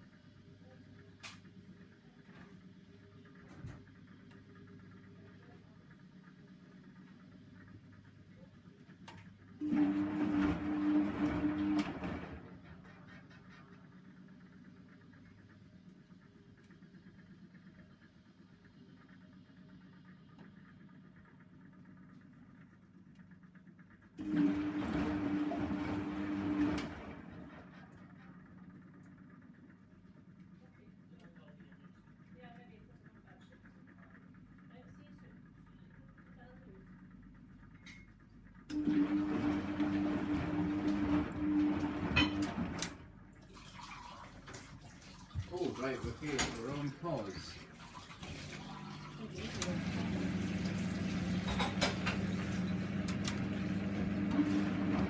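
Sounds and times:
washing machine motor hum: 0:00.0 - 0:55.0
low steady hum: 0:27.0 - 0:55.0.

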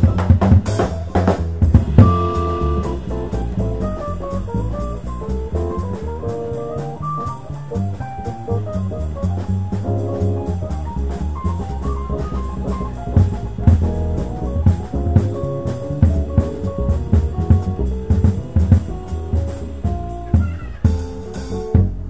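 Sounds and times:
drum kit with cymbals: 0:00.0 - 0:22.0
jazz band playing: 0:00.0 - 0:22.0
plucked upright bass: 0:00.0 - 0:22.0.

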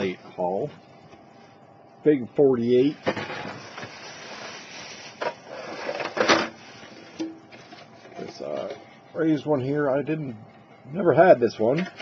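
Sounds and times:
plastic rustling and clattering: 0:03.0 - 0:08.9.

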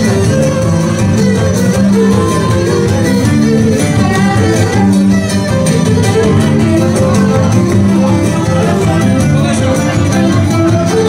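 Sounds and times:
bowed lyra melody: 0:00.0 - 0:11.0
plucked lute accompaniment: 0:00.0 - 0:11.0.

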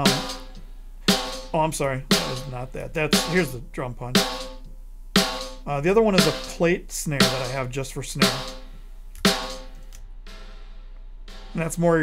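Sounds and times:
snare drum hits with reverb: 0:00.0 - 0:03.6, 0:04.2 - 0:04.6, 0:05.2 - 0:09.7, 0:11.3 - 0:12.0.

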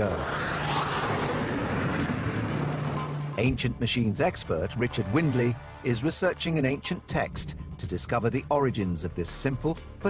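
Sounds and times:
jet aircraft roaring: 0:00.0 - 0:03.4.

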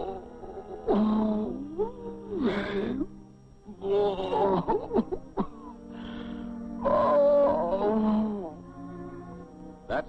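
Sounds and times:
soft orchestral music: 0:00.0 - 0:10.0.

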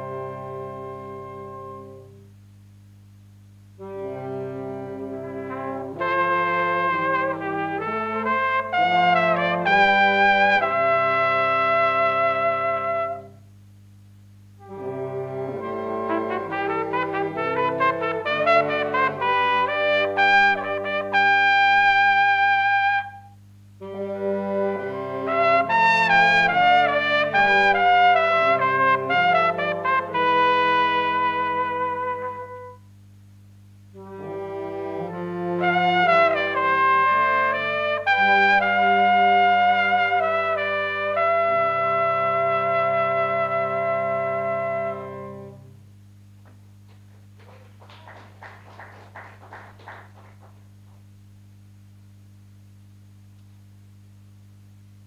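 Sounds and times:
trumpets playing a tune: 0:00.0 - 0:02.2, 0:03.8 - 0:13.4, 0:14.6 - 0:32.9, 0:33.9 - 0:45.8.

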